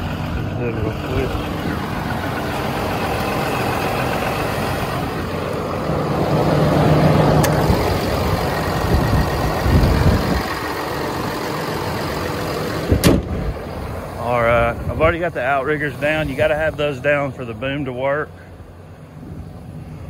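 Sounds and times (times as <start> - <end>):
diesel engine idling: 0.0 - 20.0.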